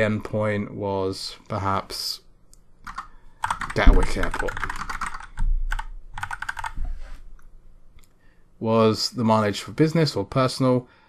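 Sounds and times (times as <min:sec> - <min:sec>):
typing on computer keyboard: 0:02.8 - 0:06.8.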